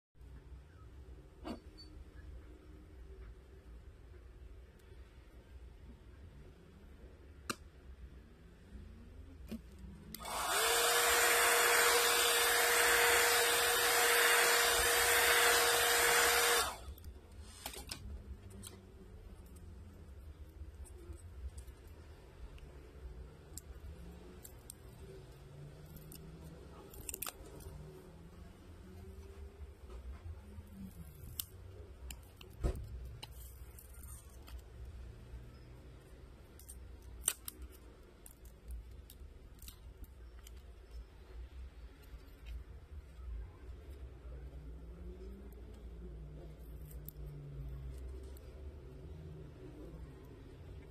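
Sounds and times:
hot-air blower rushing and humming: 10.2 - 16.8.

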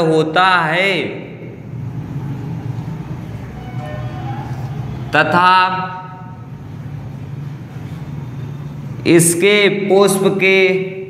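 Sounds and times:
low-pitched background hum: 1.0 - 5.2, 5.9 - 9.1.

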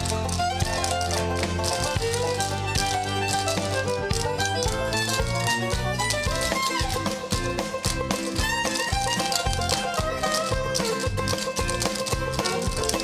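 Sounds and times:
tap shoes clicking: 0.0 - 13.0
upbeat recorded music: 0.0 - 13.0.

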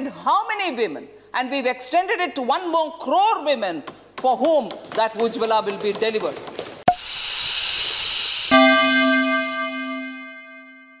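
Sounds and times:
struck hit with bell-like ring: 8.5 - 11.0.

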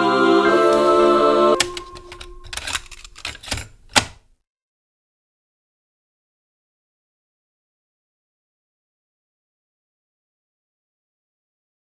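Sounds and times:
sharp clicks and knocks: 1.6 - 4.3.

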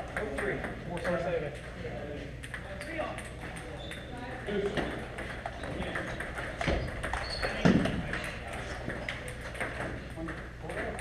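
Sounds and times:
table tennis balls ticking: 0.0 - 11.0.

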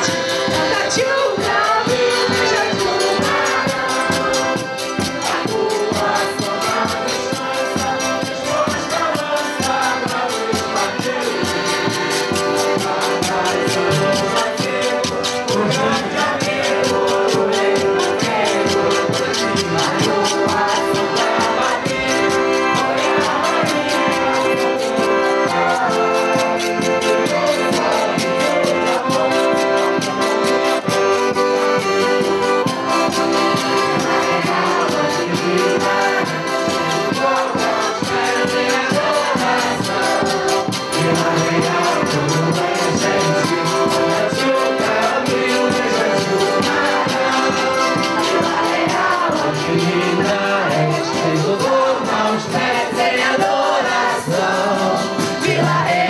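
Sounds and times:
steady drum beat: 0.0 - 30.4, 32.3 - 56.0
people singing together: 0.0 - 56.0
piano accordions: 0.0 - 56.0.

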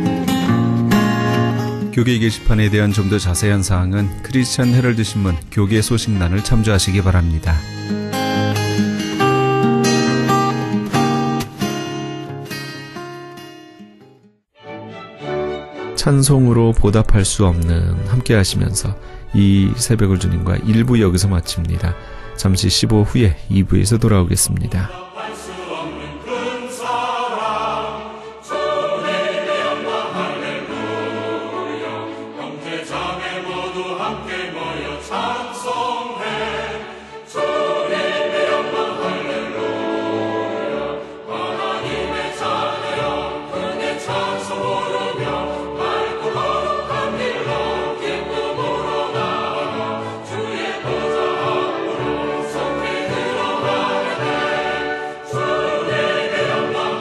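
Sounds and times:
choir singing sustained lines: 24.8 - 57.0.

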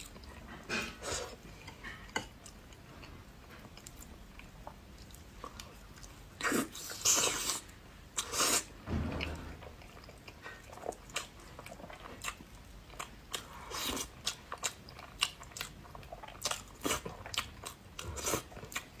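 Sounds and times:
chewing and wet mouth sounds: 0.0 - 8.7, 9.7 - 19.0.

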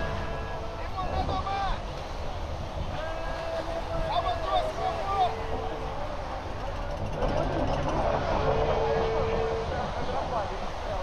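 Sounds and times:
surf: 0.0 - 11.0
wind: 0.0 - 11.0
people talking: 0.1 - 1.8, 3.0 - 5.7.

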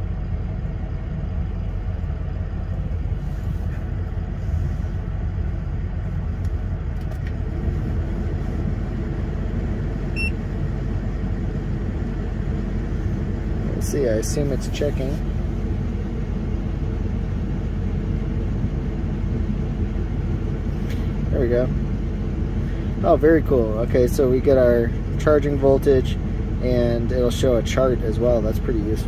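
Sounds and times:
diesel engine idling: 0.0 - 29.0.

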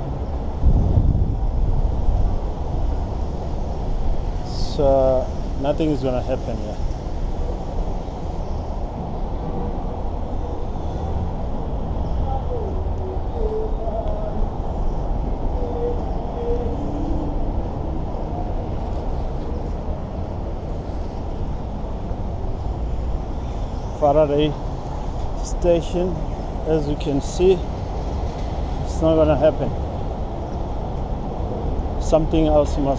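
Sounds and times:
low rumble of city traffic: 0.0 - 32.9.

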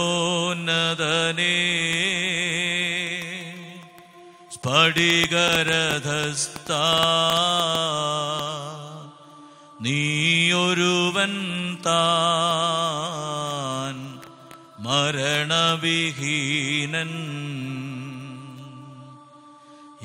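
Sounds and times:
liturgical chant singing: 0.0 - 20.0.

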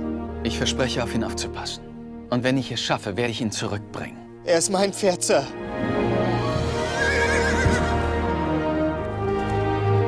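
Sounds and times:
film score music: 0.0 - 10.0
horse whinnying: 6.2 - 8.1.

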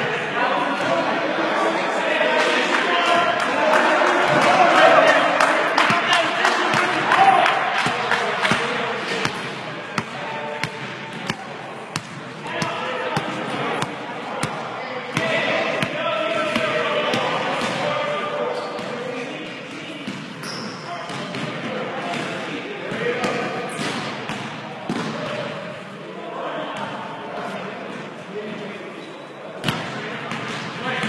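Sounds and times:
players' voices and calls: 0.0 - 31.0.

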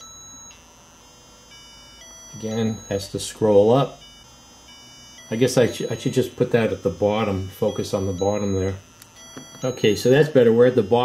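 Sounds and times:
electronic beeping tones: 1.5 - 11.0.

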